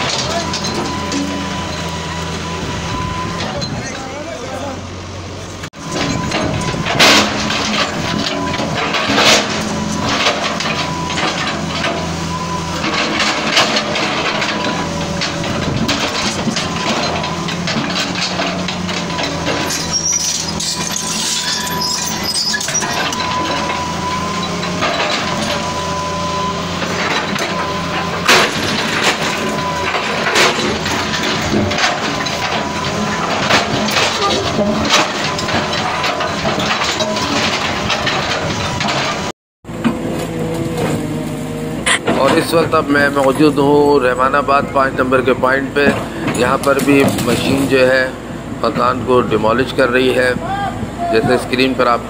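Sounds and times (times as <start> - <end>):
excavator diesel engine running: 0.0 - 52.0.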